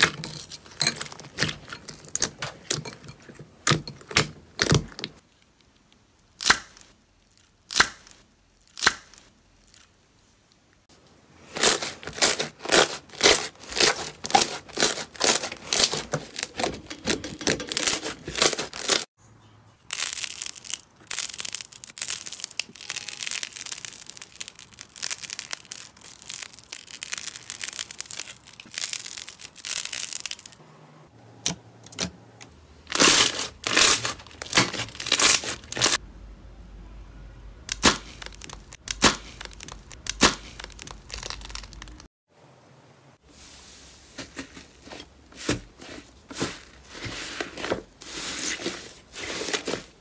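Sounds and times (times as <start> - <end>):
slime crackling and popping: 4.6 - 10.0, 19.9 - 30.6, 32.9 - 36.0, 37.7 - 42.1.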